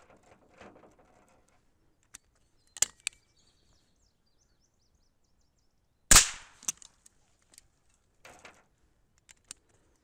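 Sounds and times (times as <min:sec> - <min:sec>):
rifle shot: 0:06.1 - 0:06.6.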